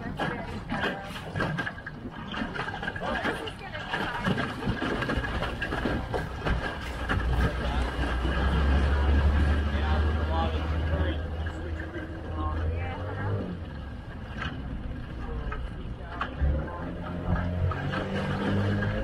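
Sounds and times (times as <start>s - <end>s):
boat motor running: 0.0s - 19.0s
rushing water: 0.0s - 19.0s.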